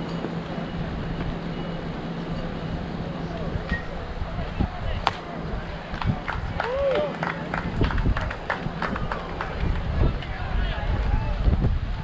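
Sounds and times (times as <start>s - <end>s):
sharp claps or clicks: 5.9s - 10.3s.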